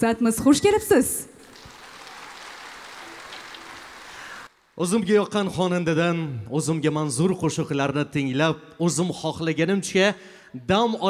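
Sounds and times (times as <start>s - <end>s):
audience applauding: 1.4s - 4.8s.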